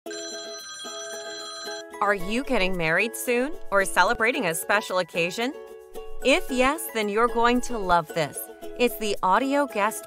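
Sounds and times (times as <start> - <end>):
telephone ringing: 0.1 - 2.3.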